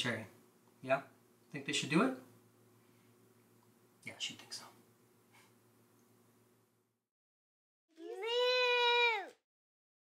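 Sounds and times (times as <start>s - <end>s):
meow-like animal call: 8.0s - 9.4s.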